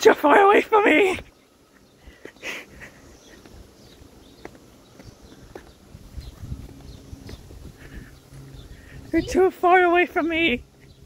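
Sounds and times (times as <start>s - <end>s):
footsteps on concrete sidewalk: 0.0s - 11.0s
low rumble: 5.4s - 9.4s.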